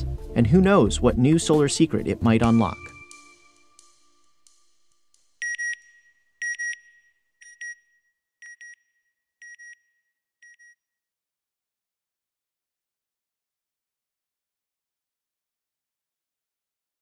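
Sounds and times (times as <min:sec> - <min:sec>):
background music: 0:00.0 - 0:06.2.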